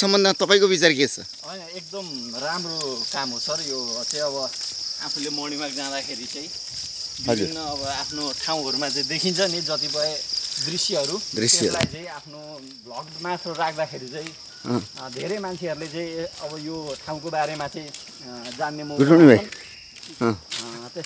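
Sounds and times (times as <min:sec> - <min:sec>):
high-pitched insect drone: 0:00.0 - 0:21.0
men talking: 0:00.0 - 0:21.0.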